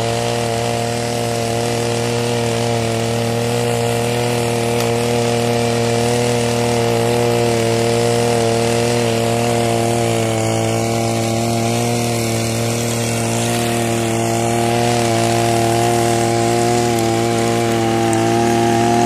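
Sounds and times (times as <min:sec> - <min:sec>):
brush cutter engine running: 0:00.0 - 0:19.0
tiller churning soil: 0:00.0 - 0:19.0.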